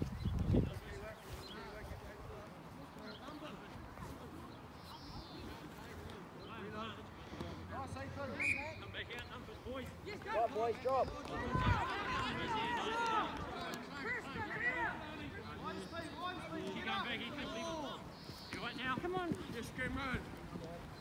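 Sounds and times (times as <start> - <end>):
distant voices shouting: 9.8 - 20.6.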